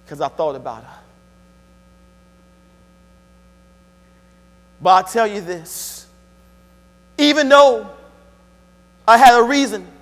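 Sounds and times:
man speaking: 0.0s - 1.1s, 4.8s - 6.1s, 7.2s - 8.1s, 9.1s - 10.0s
faint electrical hum: 0.0s - 10.0s.

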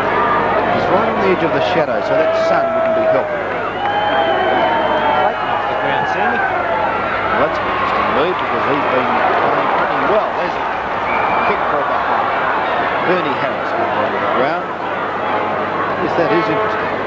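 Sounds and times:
crowd cheering and shouting: 0.0s - 17.0s.

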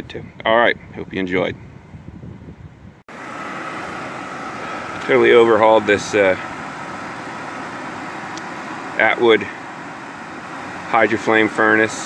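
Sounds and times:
furnace blower whooshing hum: 3.1s - 12.0s.

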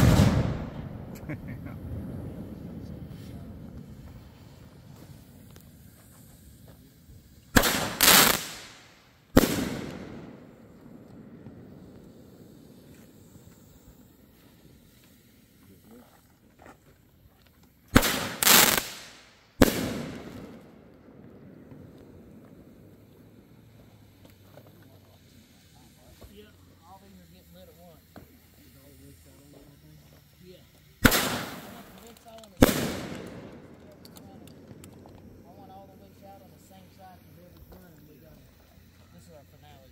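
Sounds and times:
fireworks bangs with rolling echo: 0.0s - 5.5s, 7.5s - 13.4s, 17.9s - 23.5s, 31.0s - 35.5s.

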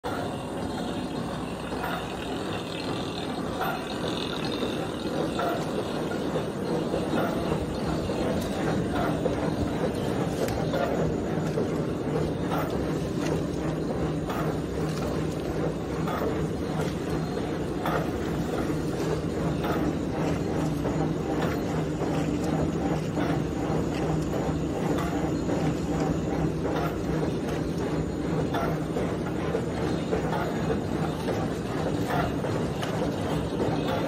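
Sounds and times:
machine humming: 0.0s - 34.0s.

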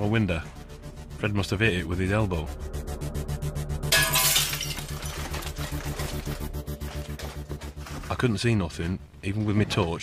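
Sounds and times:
dark music with pulsing beat: 0.0s - 4.0s, 4.8s - 9.0s
glass shattering: 3.9s - 5.9s.

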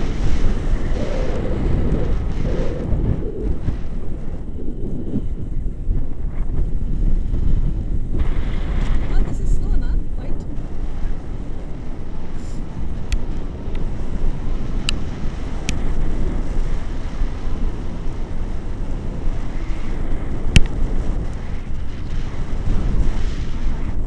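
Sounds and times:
wind rushing over microphone: 0.0s - 24.0s.

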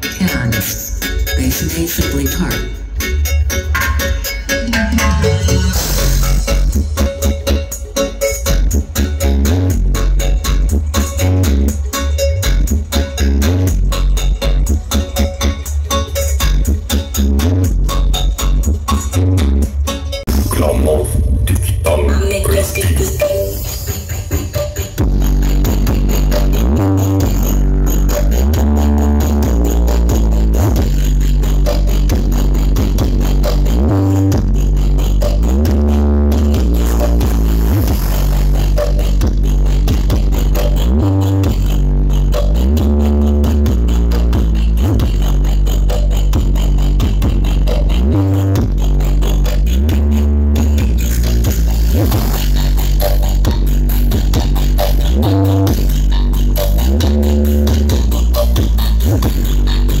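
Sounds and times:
electronic dance music with heavy bass: 0.0s - 60.0s.

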